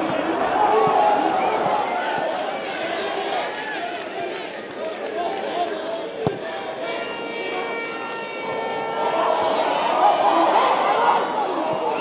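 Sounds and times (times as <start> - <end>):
stadium crowd noise: 0.0 - 12.0
voices rising: 0.0 - 12.0
long held tones: 6.8 - 10.5.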